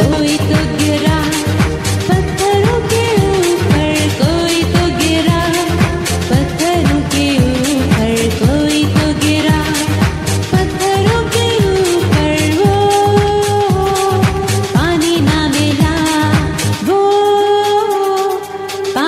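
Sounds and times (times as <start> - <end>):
person singing: 0.0 - 19.0
pop backing with drum beat: 0.0 - 19.0.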